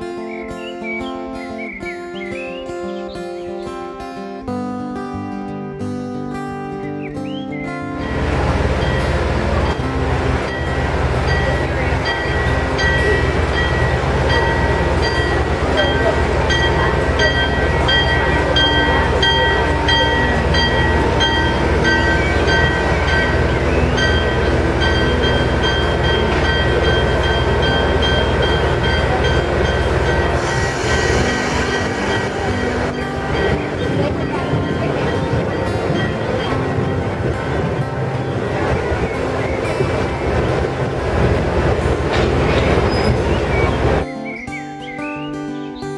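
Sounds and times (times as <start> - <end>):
locomotive engine drone: 7.2 - 44.1
rumbling wash: 8.0 - 44.0
thin high tones: 11.4 - 36.5
hiss: 30.4 - 32.8.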